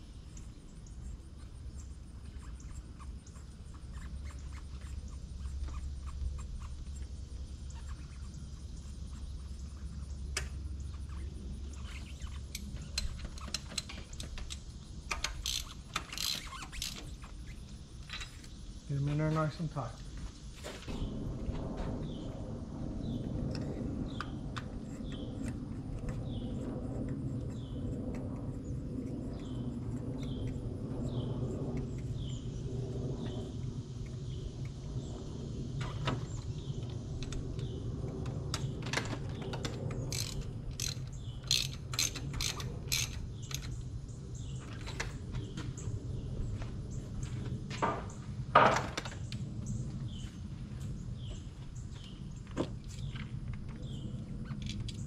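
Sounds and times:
steady low hum: 0.0s - 55.0s
hand ratchet clicking: 12.6s - 17.1s, 40.1s - 43.7s.

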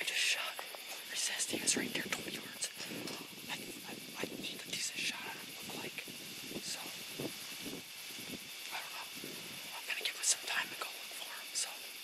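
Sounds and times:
person whispering: 0.0s - 7.0s, 8.6s - 12.0s
faint high hiss: 0.0s - 12.0s.

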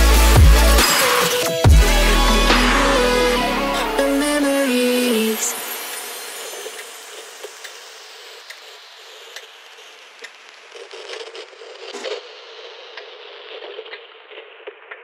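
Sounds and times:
crackling noise bed: 4.9s - 15.0s.

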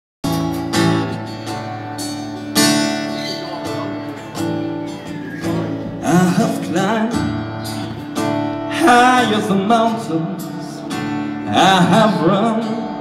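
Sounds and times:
acoustic guitar strumming: 0.2s - 13.0s.

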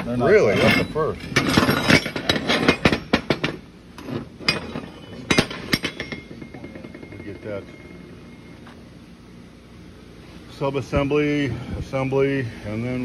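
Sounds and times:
metal brackets clinking: 0.2s - 8.0s.

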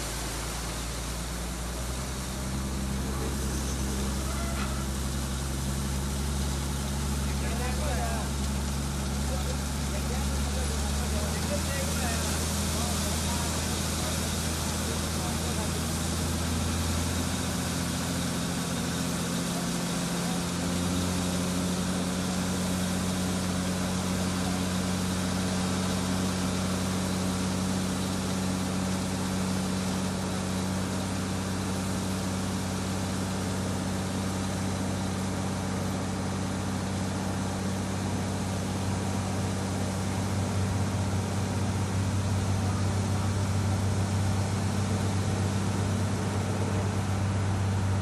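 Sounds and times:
diesel truck engine at low revs: 0.0s - 48.0s.

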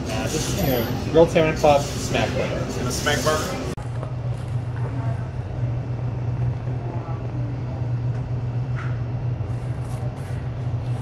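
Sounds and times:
faint voices: 0.0s - 8.6s
steady low hum: 0.0s - 11.0s.

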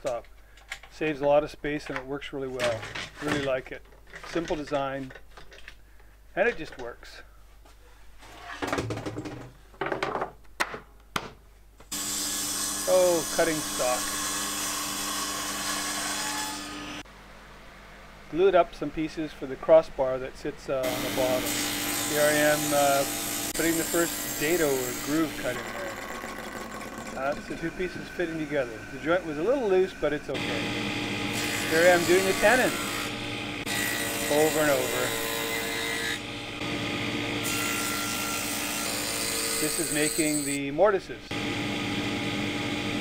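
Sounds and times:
table saw cutting wood: 11.9s - 17.0s, 20.8s - 40.6s, 41.3s - 43.0s
saw motor hum: 20.8s - 40.6s.

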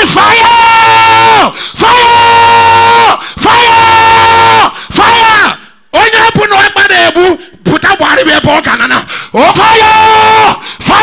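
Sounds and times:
person yelling long cries: 0.0s - 5.6s, 9.4s - 11.0s.

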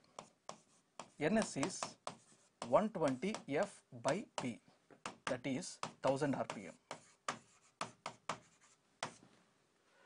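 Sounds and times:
pen strokes on screen: 0.0s - 3.8s, 6.5s - 9.2s.

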